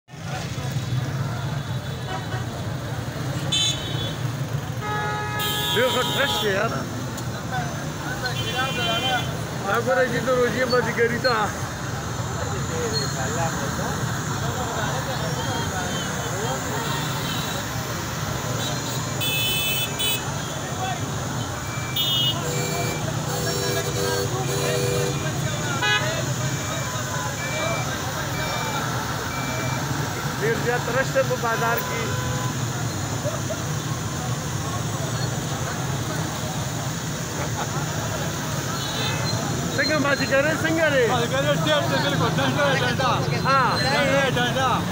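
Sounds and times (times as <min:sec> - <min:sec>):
hubbub of many voices: 0:00.0 - 0:44.9.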